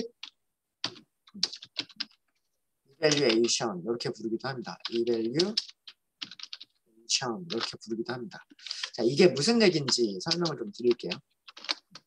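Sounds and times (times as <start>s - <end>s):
typing on computer keyboard: 0.0s - 3.6s, 4.6s - 6.8s, 7.4s - 9.0s, 9.7s - 12.0s.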